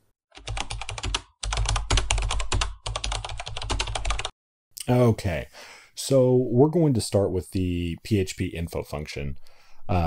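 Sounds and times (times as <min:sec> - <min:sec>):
fast keyboard typing: 0:00.4 - 0:04.3.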